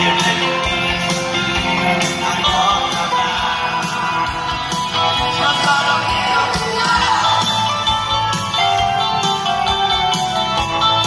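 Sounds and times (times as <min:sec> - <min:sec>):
guitar: 0:00.0 - 0:11.0
keyboards: 0:00.0 - 0:11.0
steady drum beat: 0:00.0 - 0:11.0.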